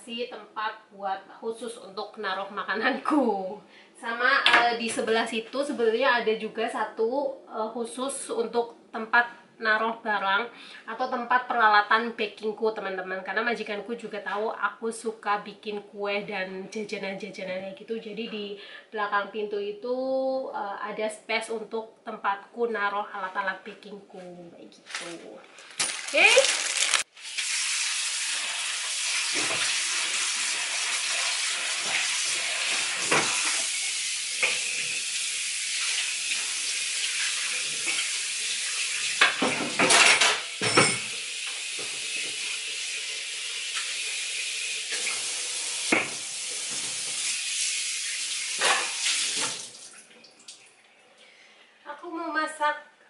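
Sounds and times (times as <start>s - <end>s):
tap running into sink: 29.3s - 29.8s, 32.7s - 33.7s, 44.9s - 47.3s
cookware clattering against sink: 39.2s - 41.2s, 48.6s - 49.0s.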